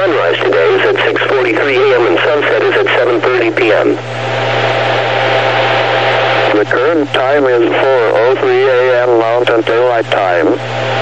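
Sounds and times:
low hum: 0.0 - 11.0
radio static hiss: 0.0 - 11.0.

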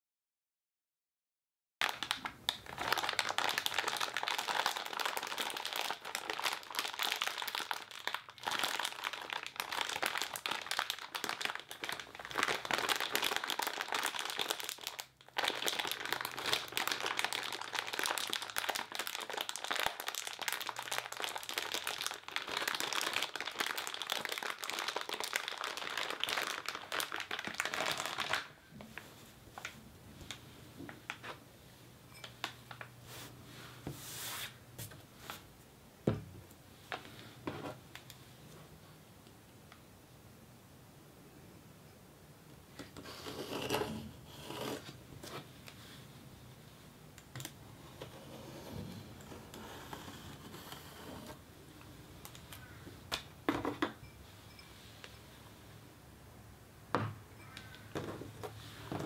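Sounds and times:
plastic-wrapped packet crinkling: 1.8 - 28.7.

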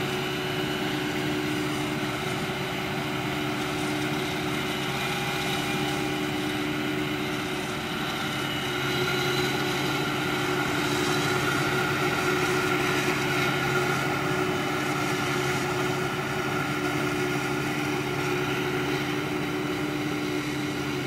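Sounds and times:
forage harvester droning: 0.0 - 21.0.

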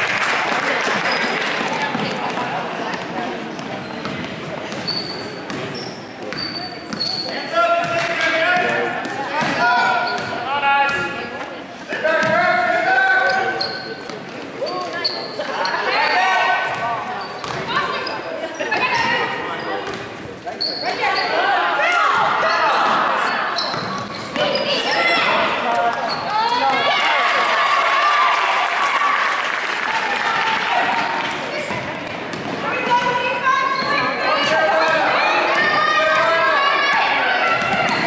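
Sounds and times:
players and spectators shouting: 20.9 - 23.7, 24.4 - 31.7, 32.6 - 38.0.

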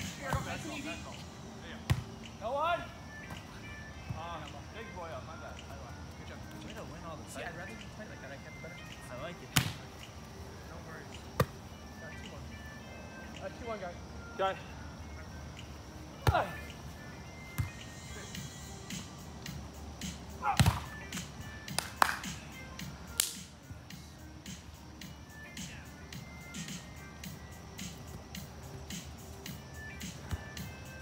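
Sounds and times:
faint background music: 0.0 - 31.0
hand slap: 21.7 - 22.3, 23.2 - 23.5.

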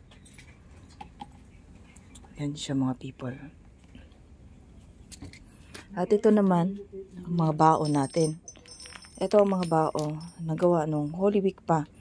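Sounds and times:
bangle bracelets clinking: 7.5 - 11.2.

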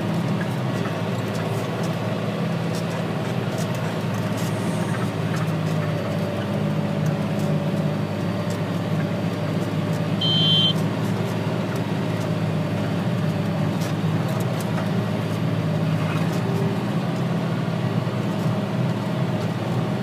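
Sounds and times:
tractor engine droning: 0.0 - 20.0
short high beep: 10.2 - 10.8.

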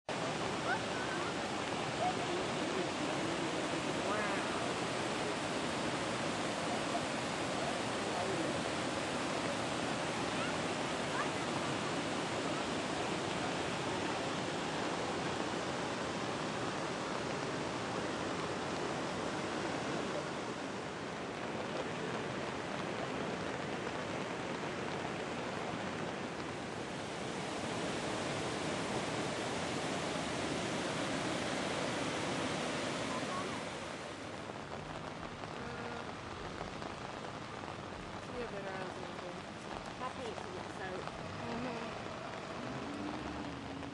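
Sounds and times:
falling rain: 0.0 - 43.9
floodwater rushing: 0.1 - 43.9.

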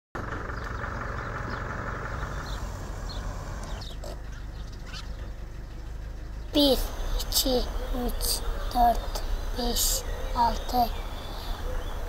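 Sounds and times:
steady outdoor rushing: 0.2 - 12.0
small birds chirping: 0.4 - 12.0.

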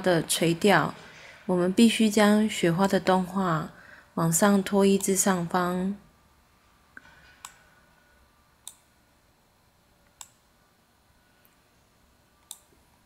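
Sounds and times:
computer mouse clicks: 7.0 - 7.7, 8.6 - 8.9, 10.0 - 10.4, 12.4 - 12.8.

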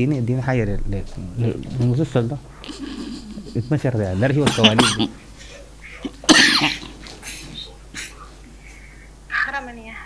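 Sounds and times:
person coughing: 4.4 - 5.2, 6.0 - 8.2.

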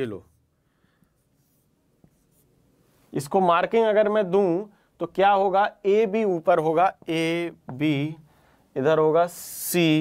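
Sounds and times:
marker pen scratching on whiteboard: 1.2 - 2.5.

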